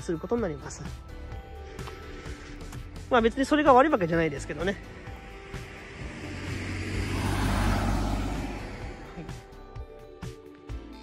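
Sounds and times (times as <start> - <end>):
road vehicle passing: 3.9 - 9.8.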